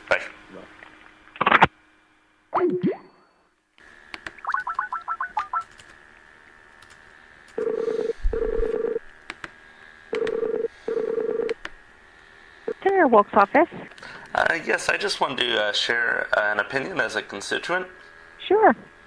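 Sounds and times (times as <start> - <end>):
phone ringback tone: 7.6 - 9.0, 10.1 - 11.6.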